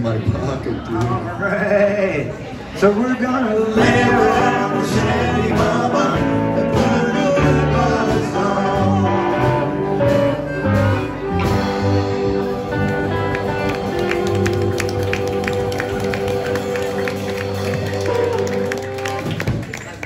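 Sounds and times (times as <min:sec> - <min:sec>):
live band playing: 0:03.6 - 0:20.0
harmonica long held notes: 0:06.2 - 0:19.2.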